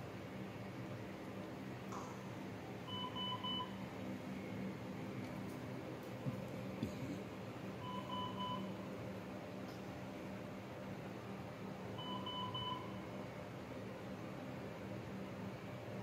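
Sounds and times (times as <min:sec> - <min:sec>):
low hum of equipment: 0:00.0 - 0:16.0
medical alarm triple beep: 0:02.9 - 0:03.8, 0:07.8 - 0:08.8, 0:12.0 - 0:13.0.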